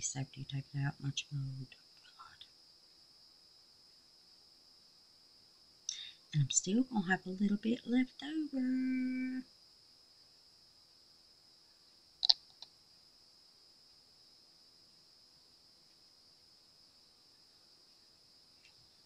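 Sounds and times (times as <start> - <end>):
faint steady high hiss: 0.0 - 19.0.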